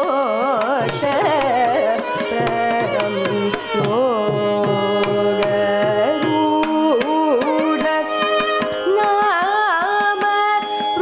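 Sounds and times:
violin accompaniment: 0:00.0 - 0:11.0
woman singing: 0:00.0 - 0:11.0.

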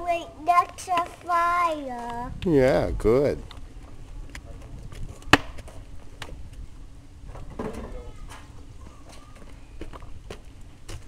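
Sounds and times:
toddler footsteps on pavement: 0:00.0 - 0:02.5, 0:03.6 - 0:06.7, 0:08.1 - 0:11.0.

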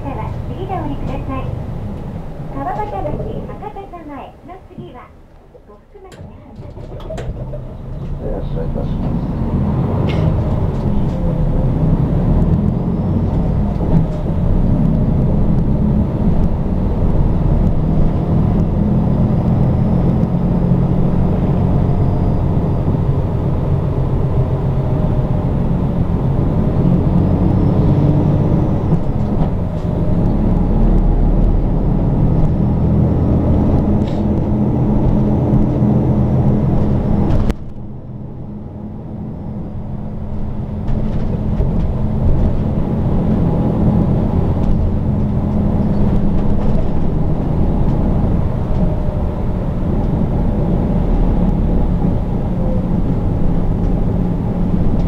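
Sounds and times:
bus diesel engine droning: 0:00.0 - 0:55.0
dull hum: 0:00.0 - 0:55.0
road noise: 0:00.0 - 0:55.0.

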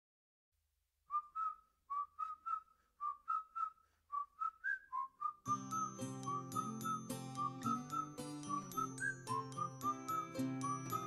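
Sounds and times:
whistled melody: 0:01.1 - 0:11.0.

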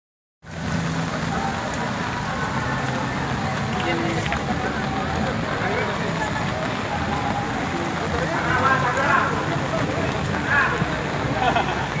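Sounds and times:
rain falling on wet street: 0:00.4 - 0:12.0.

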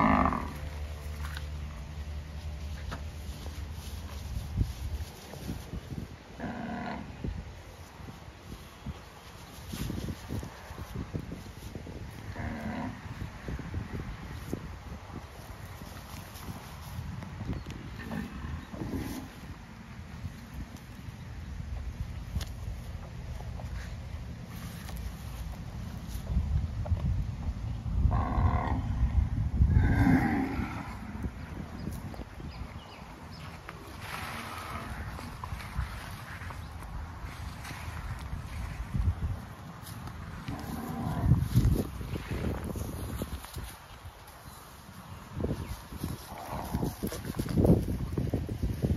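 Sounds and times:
cow mooing: 0:00.0 - 0:00.6.

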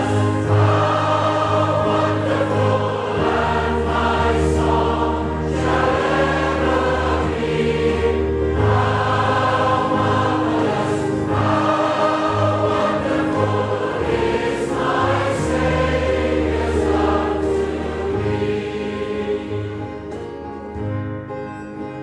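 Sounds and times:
choir singing a hymn: 0:00.0 - 0:20.6.

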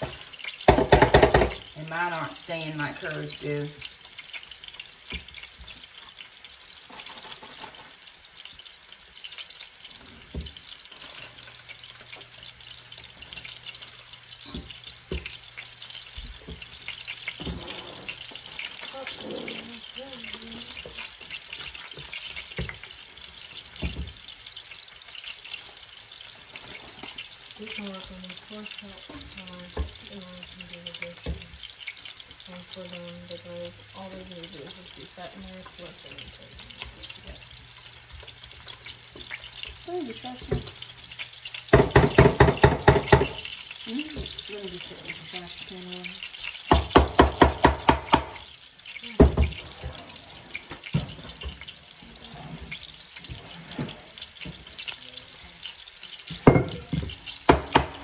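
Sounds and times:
meat sizzling in a skillet: 0:00.0 - 0:58.0.

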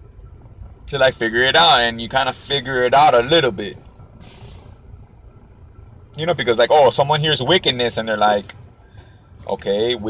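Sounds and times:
car cabin low rumble: 0:00.0 - 0:10.0
faint hiss: 0:03.7 - 0:05.8.

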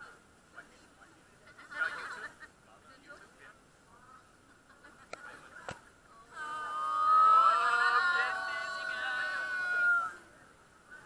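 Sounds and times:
people squealing and laughing: 0:06.3 - 0:10.2.

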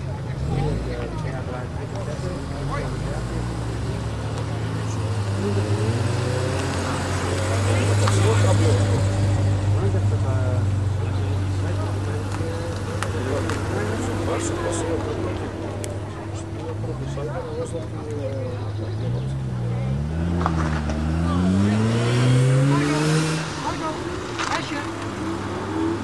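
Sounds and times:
car engine running: 0:00.0 - 0:26.0
people talking: 0:00.0 - 0:26.0.

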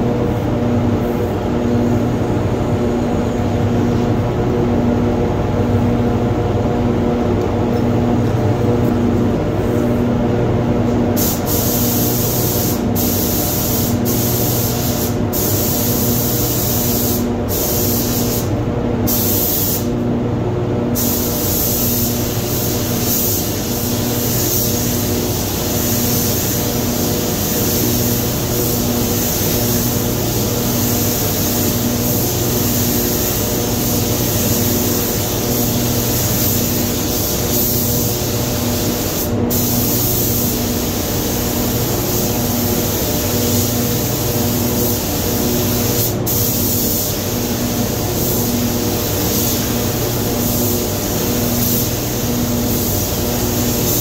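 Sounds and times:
spray gun hissing: 0:11.2 - 0:19.9, 0:21.0 - 0:54.0.

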